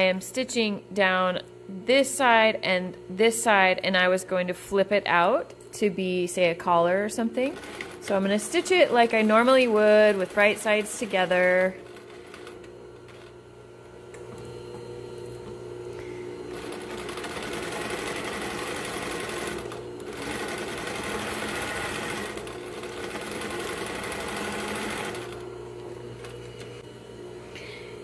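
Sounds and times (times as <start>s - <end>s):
steady low hum: 0.0s - 20.7s, 22.2s - 28.0s
sewing machine stitching: 7.4s - 13.3s, 16.5s - 25.4s.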